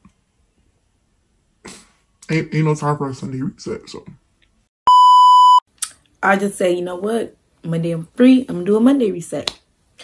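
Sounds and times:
high electronic censor bleep: 0:04.9 - 0:05.6.

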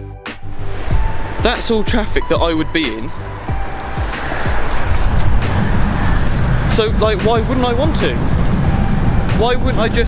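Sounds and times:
motorway traffic noise: 0:00.3 - 0:10.0
wind rumbling on microphone: 0:00.4 - 0:10.0.

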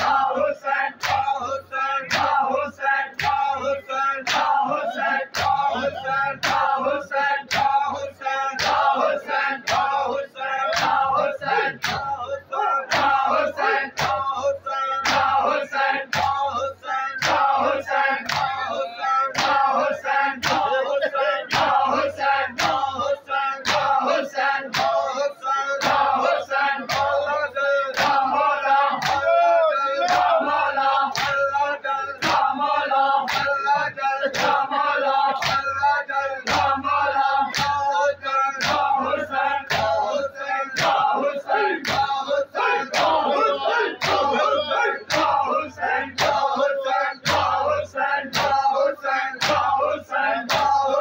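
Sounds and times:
men chanting a lament: 0:00.0 - 0:51.0.

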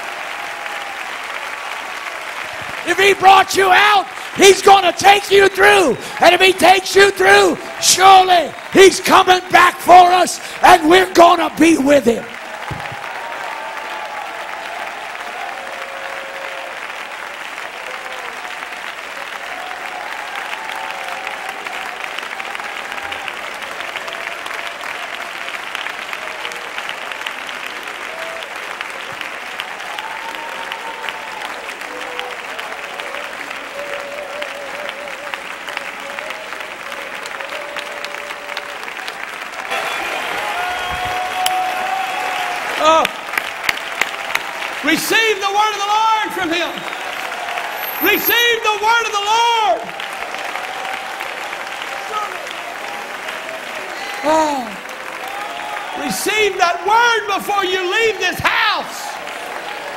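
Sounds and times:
congregation applauding: 0:00.0 - 0:59.9.

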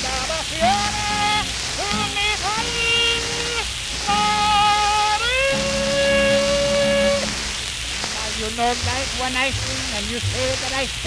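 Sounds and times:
old record vocal with orchestra: 0:00.0 - 0:11.0
record surface hiss: 0:00.0 - 0:11.0.

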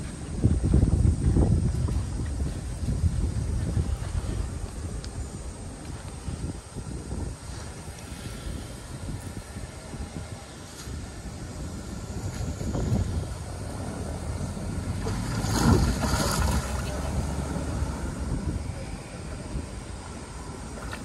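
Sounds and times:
wind on microphone: 0:00.0 - 0:21.0
road traffic: 0:03.5 - 0:21.0
deer splashing in water: 0:14.2 - 0:18.0.

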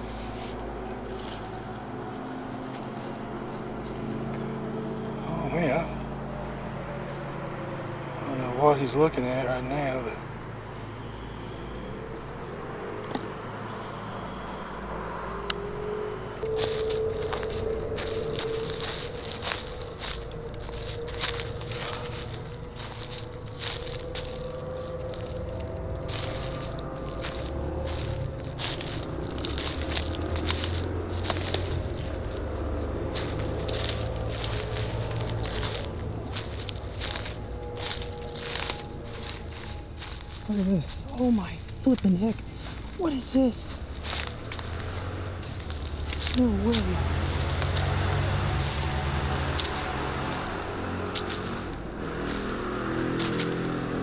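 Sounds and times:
footsteps on dry leaves and twigs: 0:00.0 - 0:54.0.

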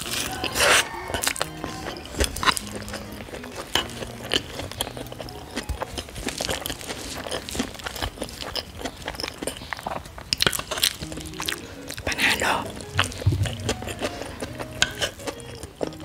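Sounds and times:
soft background music: 0:00.0 - 0:08.7, 0:10.4 - 0:16.0
chewing and mouth sounds: 0:00.0 - 0:16.0.

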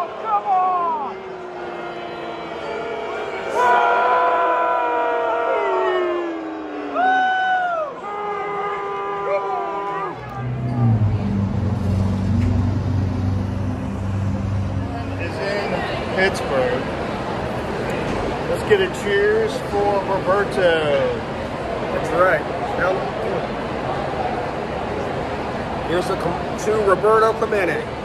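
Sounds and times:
steady low rumble: 0:10.1 - 0:17.7.

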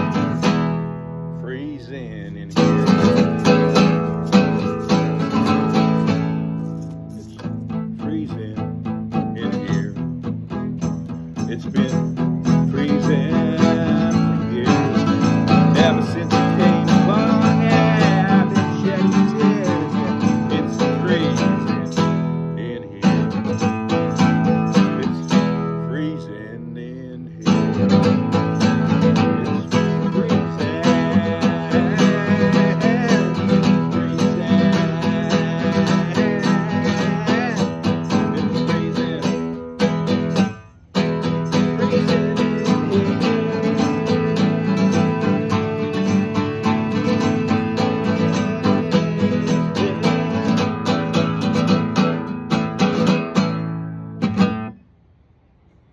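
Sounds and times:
classical guitar strummed and picked: 0:00.0 - 0:54.9.

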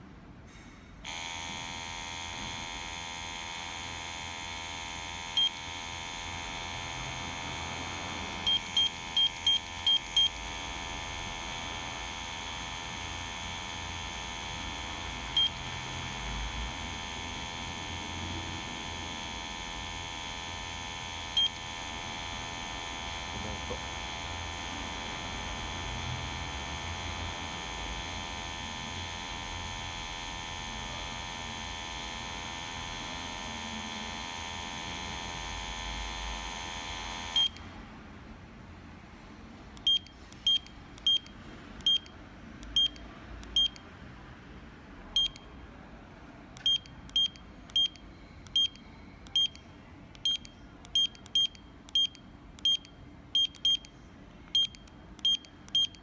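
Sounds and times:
steady electronic tone: 0:01.1 - 0:37.5
gas detector beeping: 0:04.5 - 0:07.0, 0:08.4 - 0:10.8, 0:12.0 - 0:15.7, 0:19.2 - 0:23.3, 0:37.3 - 0:37.6, 0:39.8 - 0:42.1, 0:42.7 - 0:43.8, 0:45.2 - 0:45.5, 0:46.6 - 0:49.6, 0:50.2 - 0:53.9, 0:54.5 - 0:56.0.

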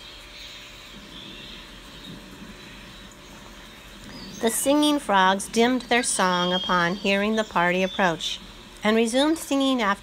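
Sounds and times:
background hiss: 0:00.0 - 0:10.0
low hum: 0:00.0 - 0:10.0.

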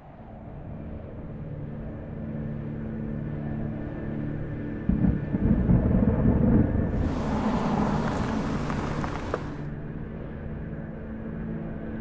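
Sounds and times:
low rumbling drone: 0:03.0 - 0:10.3.

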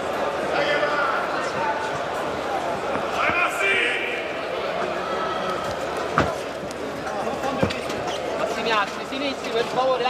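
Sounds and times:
arena crowd chatter: 0:00.0 - 0:10.0.

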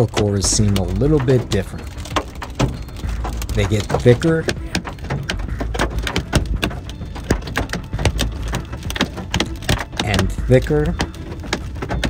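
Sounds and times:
car driving rumble: 0:00.0 - 0:12.0
hail pelting a vehicle: 0:00.0 - 0:12.0.

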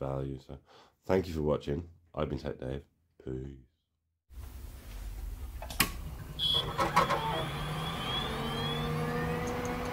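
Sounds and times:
rising synth glides: 0:07.2 - 0:09.9.

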